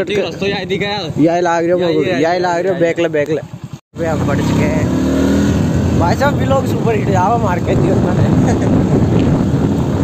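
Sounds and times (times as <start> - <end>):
motorcycle engine running: 0.1 - 10.0.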